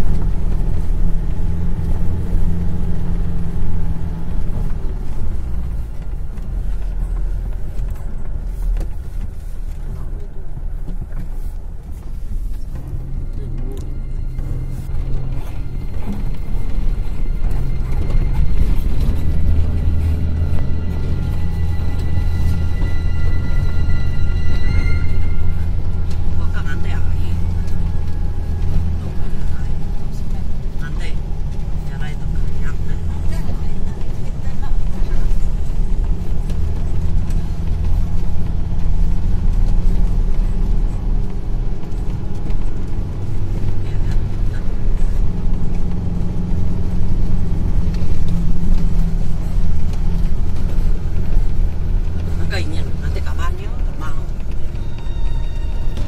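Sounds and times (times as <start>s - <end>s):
car driving on dirt road: 0.0s - 56.0s
background music: 12.1s - 56.0s.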